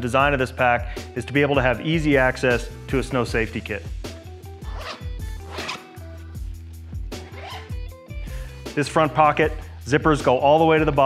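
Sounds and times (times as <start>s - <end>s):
background music with beat: 0.0s - 11.0s
zipper pulled open: 4.6s - 6.3s, 7.2s - 7.8s.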